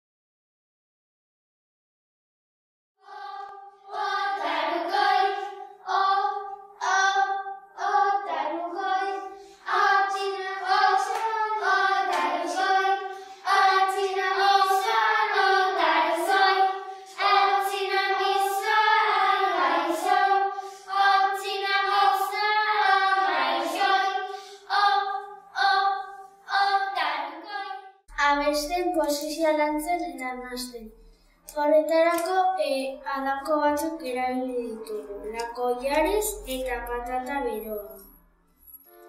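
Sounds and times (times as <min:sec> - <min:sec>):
children's choir singing: 0:03.0 - 0:28.1, 0:34.6 - 0:38.0.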